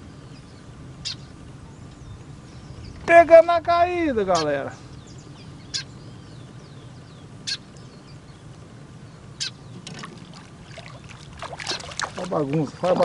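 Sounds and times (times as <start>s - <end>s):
bird chirps: 0.0s - 3.1s, 4.3s - 10.0s.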